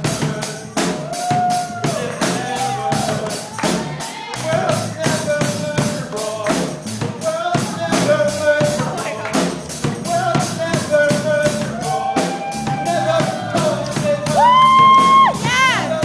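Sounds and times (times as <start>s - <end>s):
drum kit steady beat: 0.0s - 16.0s
live worship band music: 0.0s - 16.0s
person singing: 0.0s - 16.0s.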